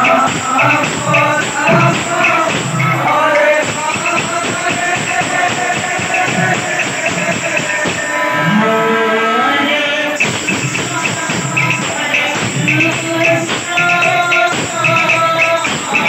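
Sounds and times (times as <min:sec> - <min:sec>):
drums beating: 0:00.0 - 0:08.2, 0:10.2 - 0:16.0
man singing into a microphone: 0:00.0 - 0:16.0.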